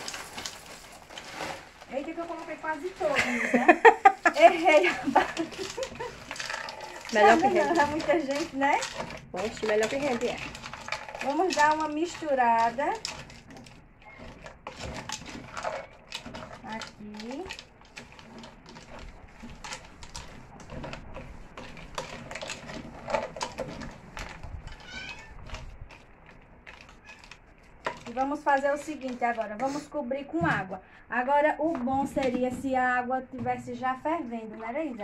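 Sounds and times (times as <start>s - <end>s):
wooden spoon stirring pasta: 0.0s - 30.4s.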